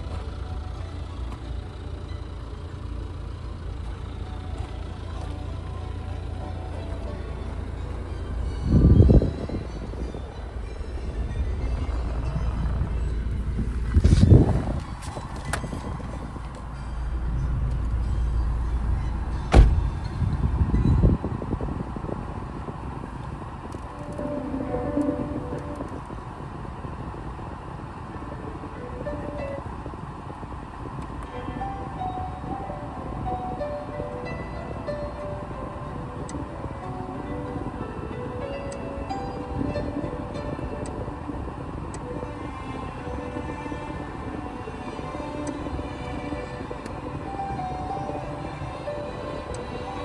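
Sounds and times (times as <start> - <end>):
classical music on car radio: 0.0 - 50.0
low rumble: 0.0 - 50.0
sharp knock: 19.5 - 19.9.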